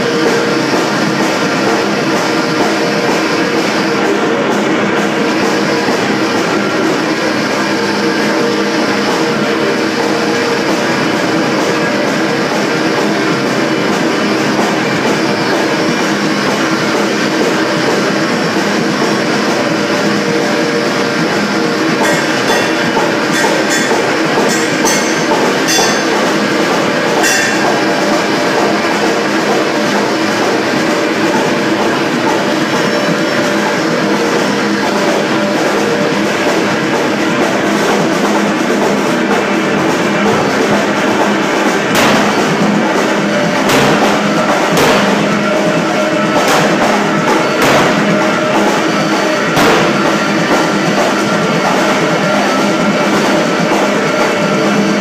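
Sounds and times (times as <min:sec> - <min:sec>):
drums: 0:00.0 - 0:55.0
sharp hits: 0:22.0 - 0:28.8, 0:39.2 - 0:51.6.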